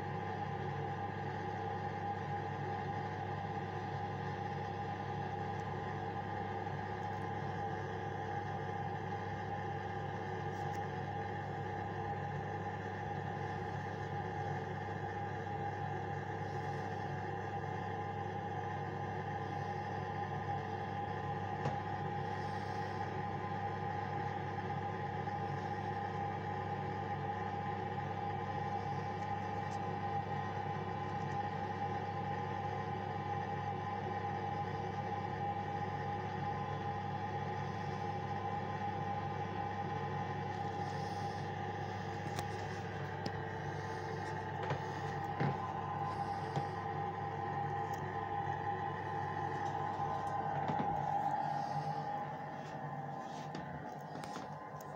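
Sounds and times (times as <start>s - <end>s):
steady hum: 0.0s - 54.9s.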